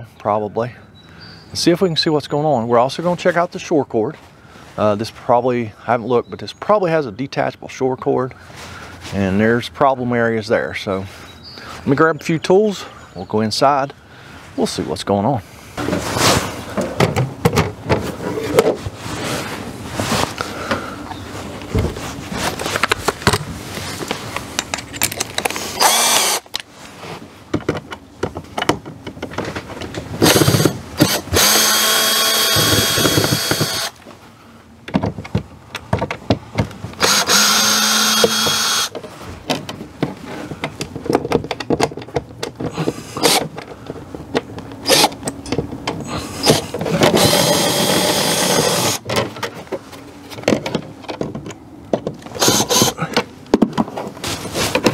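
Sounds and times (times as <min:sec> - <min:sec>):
tools clicking and knocking: 0:24.5 - 0:26.7, 0:27.5 - 0:33.9, 0:34.9 - 0:49.8, 0:50.4 - 0:53.9
cordless drill motor whine: 0:25.8 - 0:26.4, 0:30.2 - 0:34.0, 0:37.0 - 0:38.9, 0:47.2 - 0:49.0, 0:52.4 - 0:53.0.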